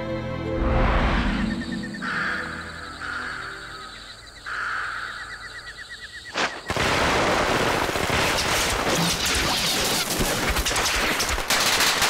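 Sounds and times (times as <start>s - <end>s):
insects chirping: 0.8s - 11.5s.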